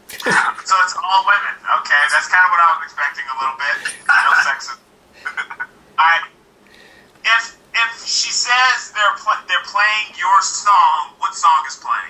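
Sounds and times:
man laughing over video call: 0:05.2 - 0:05.7.

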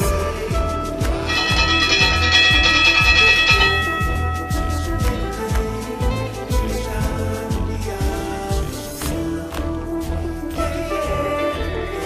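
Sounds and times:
music with steady beat: 0:00.0 - 0:10.7
held high chord: 0:01.1 - 0:07.9.

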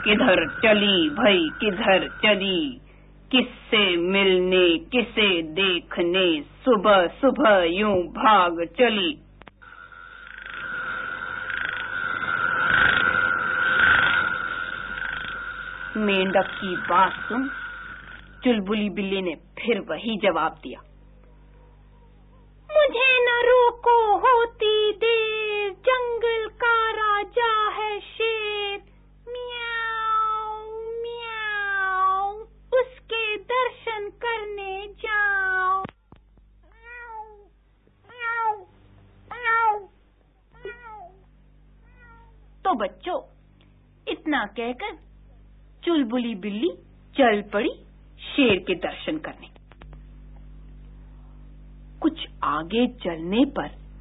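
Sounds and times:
frogs croaking: 0:00.0 - 0:02.8, 0:09.6 - 0:19.1
cat meowing: 0:29.4 - 0:32.0, 0:36.7 - 0:37.5, 0:38.1 - 0:38.7, 0:39.3 - 0:39.9, 0:40.6 - 0:41.2, 0:41.8 - 0:42.4.

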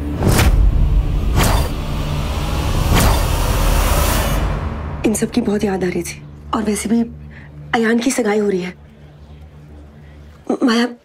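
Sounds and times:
deep rumbling drone: 0:00.0 - 0:10.5.

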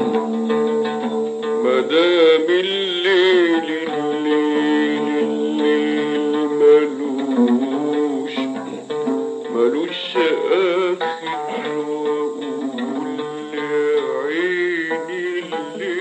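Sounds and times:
oud playing: 0:00.0 - 0:16.0
man singing held notes: 0:01.6 - 0:16.0.

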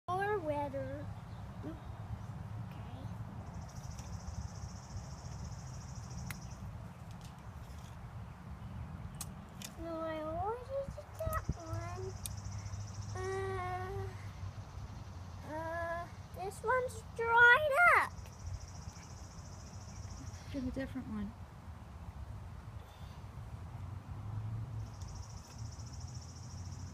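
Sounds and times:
young child vocalizing: 0:13.2 - 0:14.3, 0:15.4 - 0:16.1.

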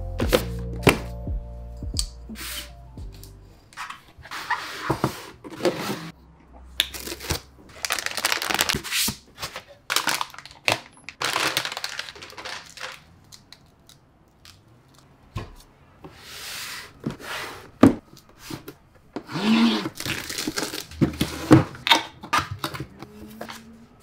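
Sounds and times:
background music: 0:00.0 - 0:03.7
plastic bag crinkling: 0:06.8 - 0:08.8, 0:09.6 - 0:13.7, 0:19.9 - 0:21.0.

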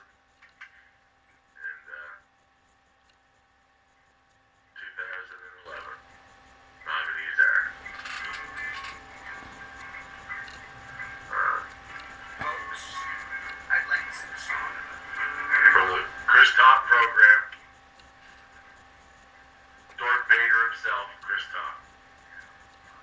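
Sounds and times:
voices talking indistinctly: 0:00.0 - 0:23.0
background music: 0:05.6 - 0:23.0.

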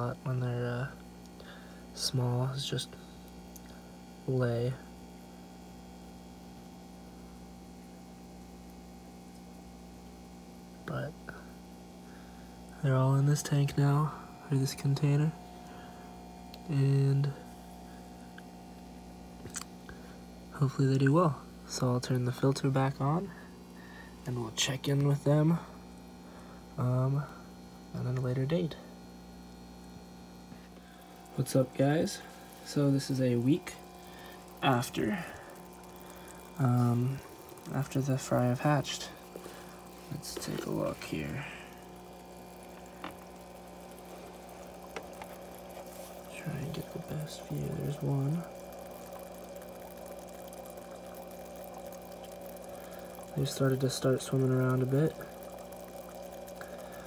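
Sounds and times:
faint electrical hum: 0:00.0 - 0:57.0
water trickling: 0:12.1 - 0:28.6, 0:29.3 - 0:57.0.

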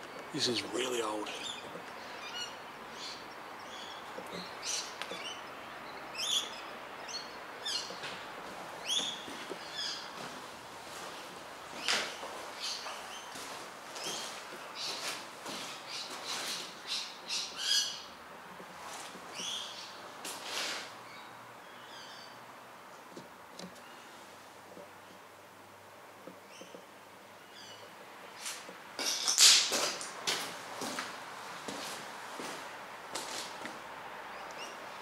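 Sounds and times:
birds calling: 0:00.0 - 0:22.5, 0:26.2 - 0:29.6.

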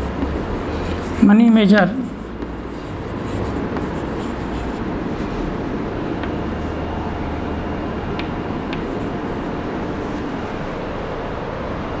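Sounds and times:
chalk scratching on a chalkboard: 0:00.0 - 0:05.3, 0:08.7 - 0:10.3.

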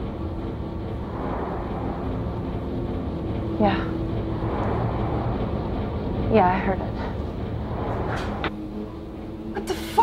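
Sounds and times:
low rumble: 0:00.0 - 0:09.6.

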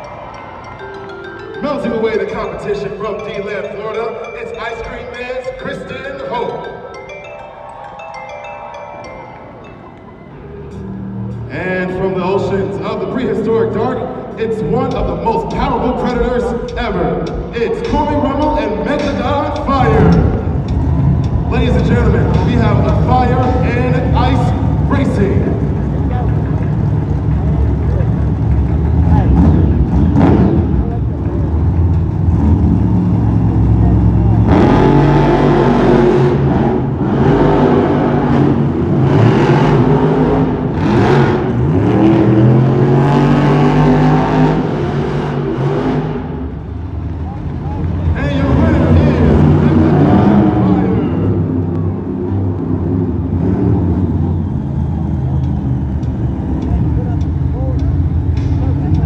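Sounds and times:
truck engines revving: 0:00.0 - 0:59.0.

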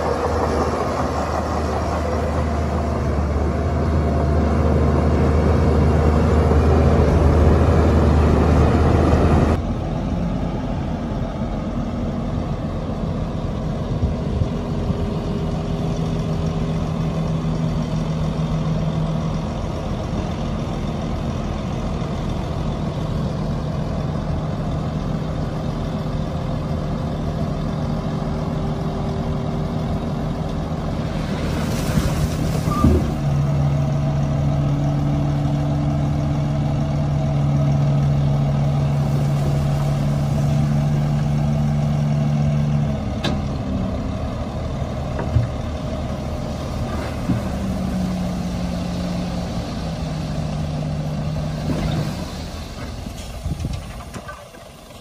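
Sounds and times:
diesel truck engines running: 0:00.0 - 0:55.0.

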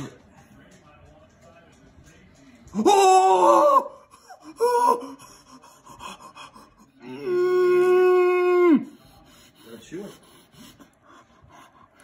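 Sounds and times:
man's long held cry: 0:02.8 - 0:05.2, 0:07.0 - 0:08.9.

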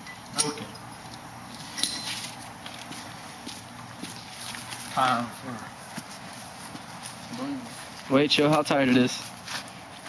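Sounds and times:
footsteps: 0:01.0 - 0:10.0.

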